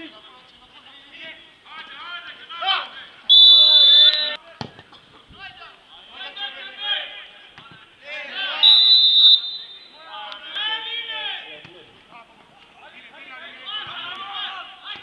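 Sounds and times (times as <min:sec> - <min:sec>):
shouting voices: 0:00.0 - 0:04.4, 0:05.4 - 0:11.6, 0:12.7 - 0:15.0
referee whistle blasts: 0:03.3 - 0:04.4, 0:08.6 - 0:10.0.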